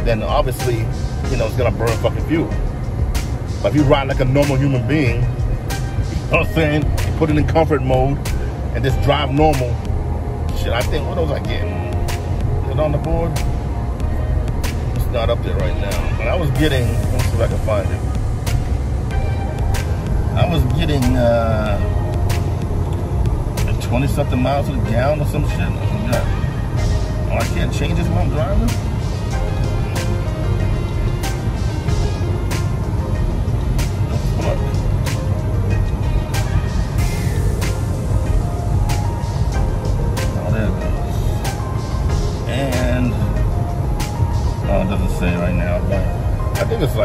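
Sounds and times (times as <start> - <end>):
car cabin road rumble: 0.0 - 47.0
music from car stereo: 0.0 - 47.0.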